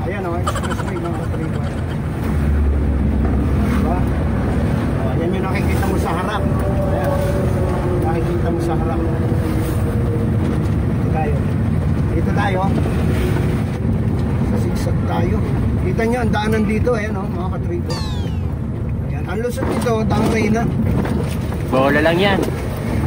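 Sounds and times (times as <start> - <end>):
vehicle engine and road rumble: 0.0 - 23.0.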